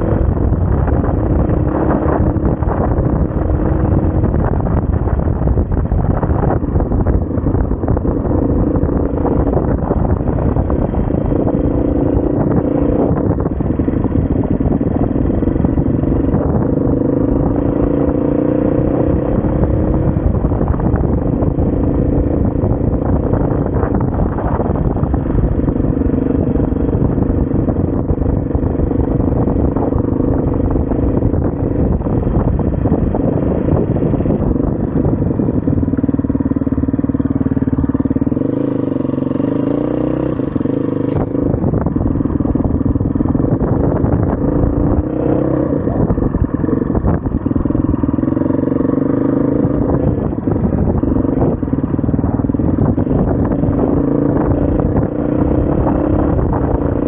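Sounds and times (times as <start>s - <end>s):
motorcycle engine running: 0.0s - 57.0s.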